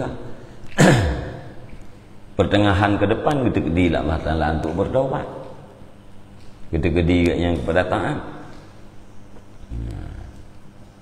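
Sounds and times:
man's low hum-like vocal sound: 0:09.3 - 0:11.0.

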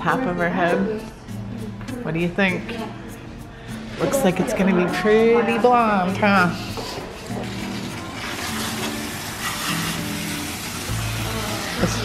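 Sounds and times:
water spraying onto hair: 0:07.3 - 0:12.0.

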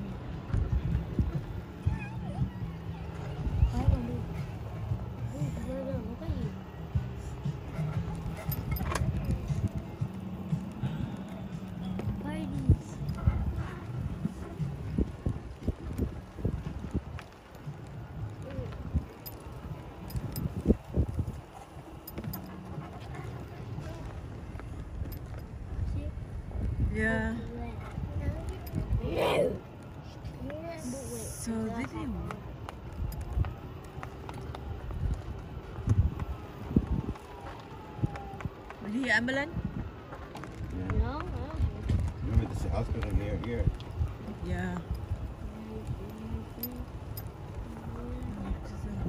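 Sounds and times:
golf cart rumbling and rattling: 0:00.0 - 0:49.0
wind buffeting microphone: 0:00.0 - 0:49.0.

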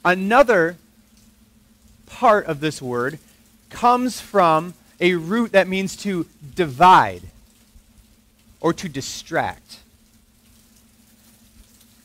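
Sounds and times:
faint steady hiss: 0:00.0 - 0:12.0
low steady hum: 0:00.0 - 0:12.0.

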